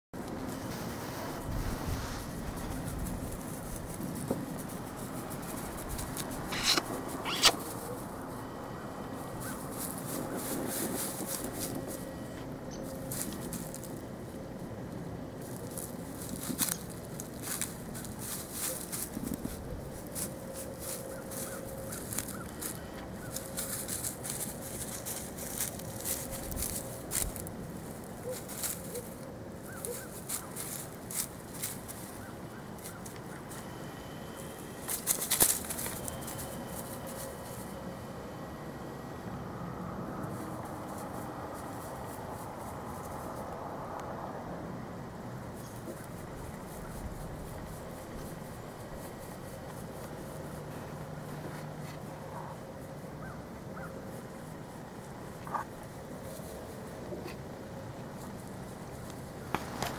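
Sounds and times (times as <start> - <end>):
faint steady hum: 0.2 - 59.9
rustling in dry grass and leaves: 0.2 - 59.9.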